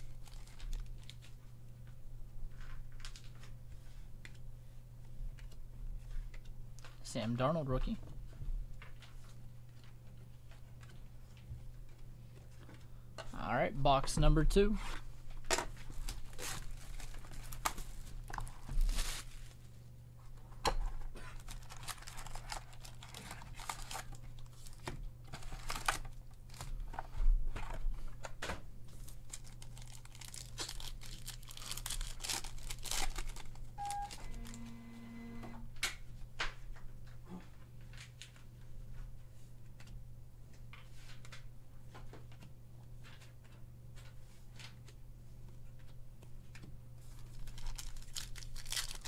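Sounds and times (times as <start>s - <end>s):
foil packs tearing and crinkling: 0.0s - 1.3s, 15.9s - 19.6s, 21.2s - 26.8s, 28.9s - 33.7s, 47.1s - 49.0s.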